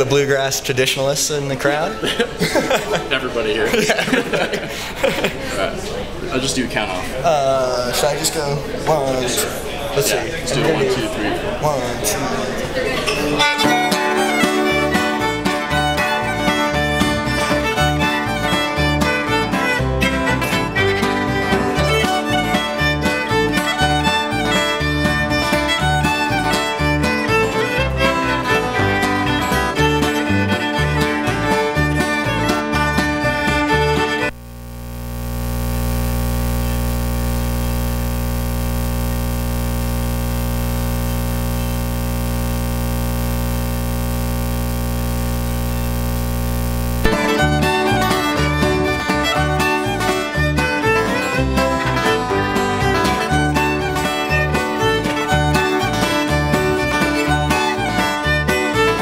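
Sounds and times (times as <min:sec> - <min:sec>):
bluegrass string band playing: 0:08.7 - 0:34.3, 0:47.0 - 0:59.0
fiddle leading: 0:13.4 - 0:34.4, 0:47.0 - 0:59.0
steady multi-tone hum: 0:34.3 - 0:47.1.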